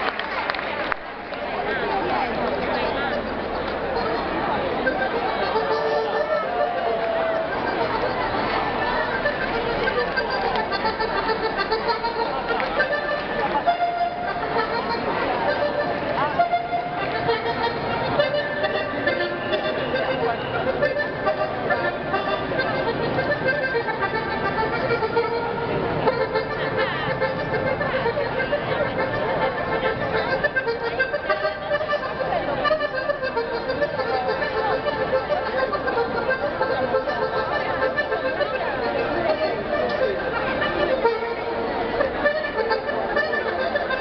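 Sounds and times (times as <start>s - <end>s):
accordion folk melody: 0.0s - 44.0s
crowd chatter: 0.0s - 44.0s.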